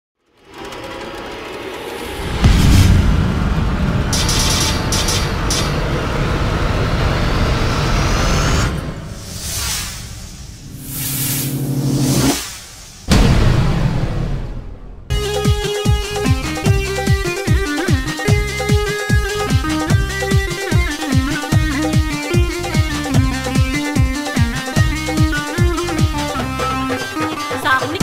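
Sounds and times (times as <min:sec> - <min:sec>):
cinematic intro music: 0:01.5 - 0:21.6
sharp hit: 0:01.8 - 0:06.4, 0:08.4 - 0:16.2
deep boom: 0:02.2 - 0:04.9, 0:13.0 - 0:15.5.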